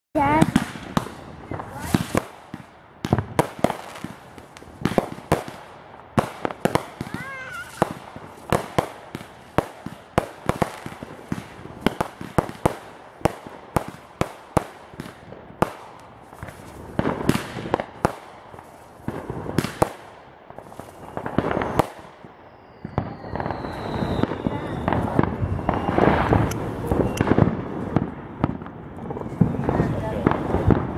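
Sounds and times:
fireworks bangs and pops: 0.2s - 30.9s
fireworks crackling: 0.2s - 30.9s
fireworks whistles: 6.4s - 9.0s, 20.6s - 27.5s.

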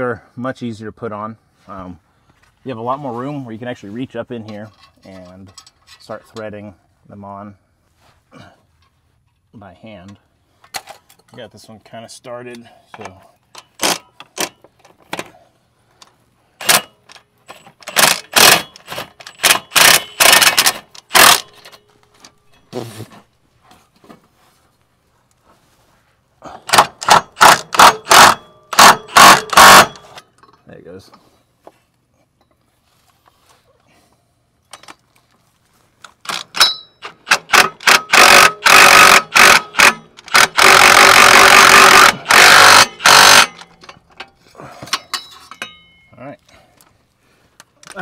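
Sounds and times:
cordless power tool running: 38.1s - 43.5s.

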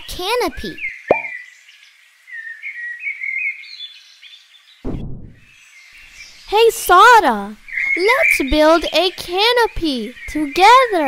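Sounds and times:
birds chirping and twittering: 0.3s - 4.8s, 5.4s - 11.0s
cartoon pop sound effect: 1.1s - 1.4s.

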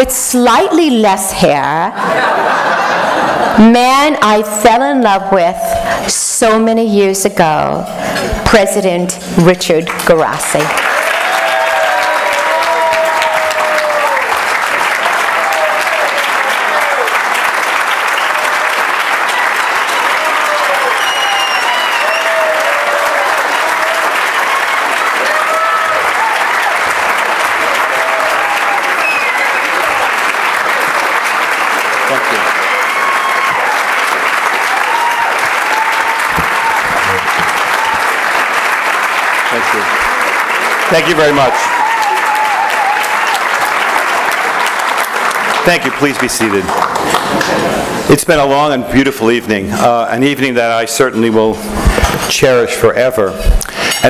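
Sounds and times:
audience clapping: 9.8s - 48.1s
voices cheering: 10.7s - 45.6s.

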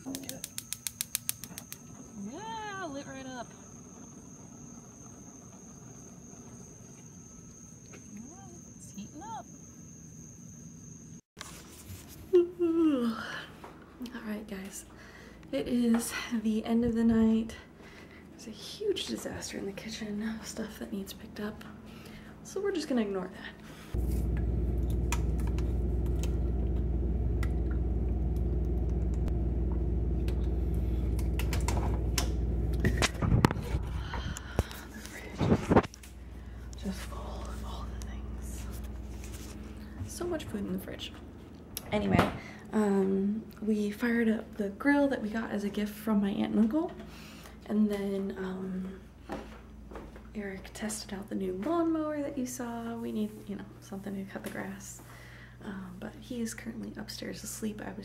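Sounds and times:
insect trill: 0.0s - 11.3s
steady low hum: 12.2s - 58.0s.

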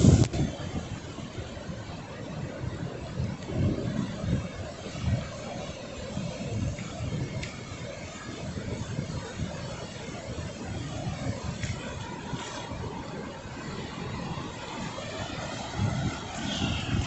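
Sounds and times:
surf rushing on beach: 0.0s - 17.0s
wind on microphone: 0.0s - 17.0s.

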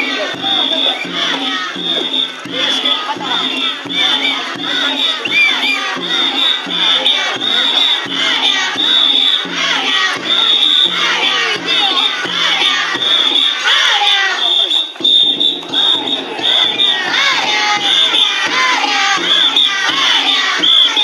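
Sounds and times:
whistle blasts: 0.0s - 4.0s, 5.0s - 21.0s
children shouting and chanting: 0.0s - 21.0s.

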